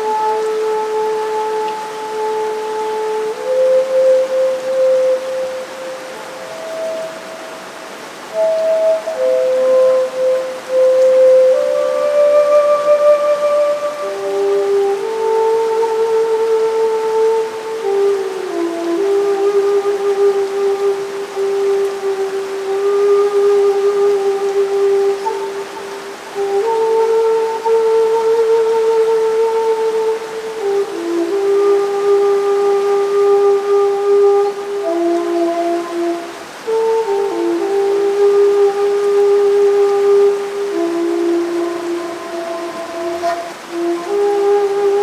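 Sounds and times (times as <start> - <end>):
bamboo flute melody: 0.0 - 45.0
steady hiss: 0.0 - 45.0.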